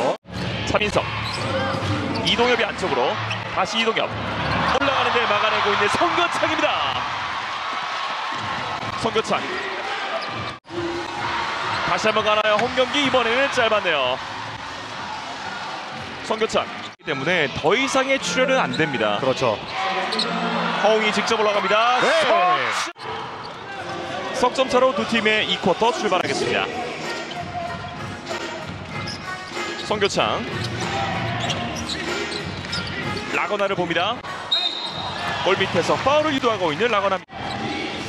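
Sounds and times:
crowd noise in a large hall: 0.0s - 38.0s
arena music: 26.0s - 38.0s.

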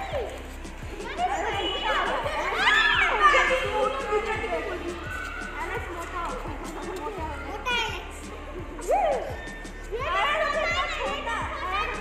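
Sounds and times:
background music: 0.0s - 12.0s
children's voices: 0.9s - 8.8s, 9.8s - 12.0s.

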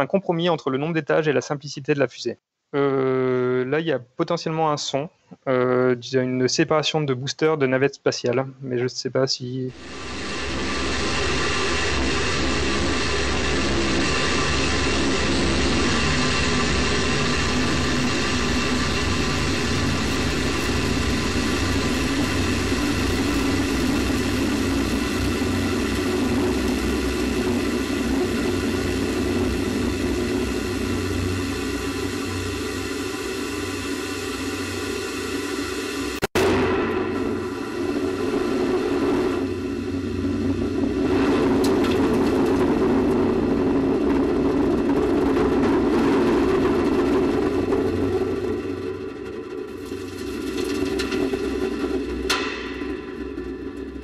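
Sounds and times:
rocket booster roaring: 9.7s - 54.0s
sharp small explosion: 36.2s - 43.9s.

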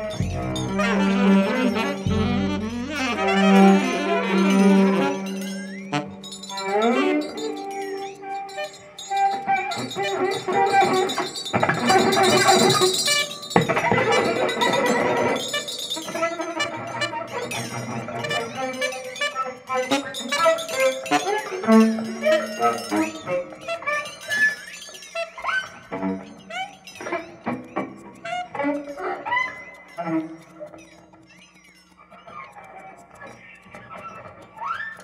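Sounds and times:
electric upright bass: 0.0s - 6.1s
cello: 0.0s - 24.6s, 25.2s - 31.3s
free-improvised ensemble music: 0.0s - 29.0s.

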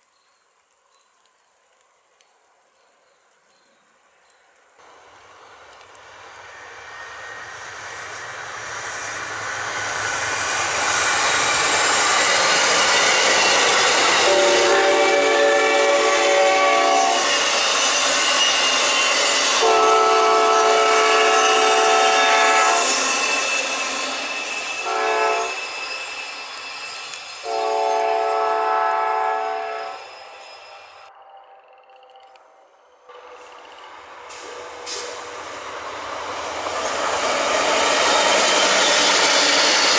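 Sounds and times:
train passing: 4.0s - 39.9s
locomotive air horn: 14.2s - 17.4s, 19.6s - 23.0s, 24.7s - 25.7s, 27.4s - 30.4s, 34.3s - 35.6s.

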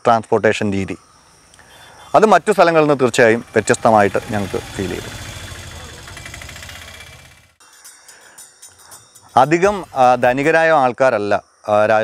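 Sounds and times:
engine idling: 1.5s - 7.6s, 8.9s - 10.6s.

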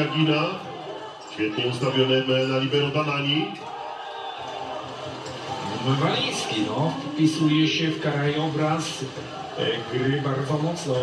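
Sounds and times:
crowd murmur in sports hall: 0.0s - 11.0s.

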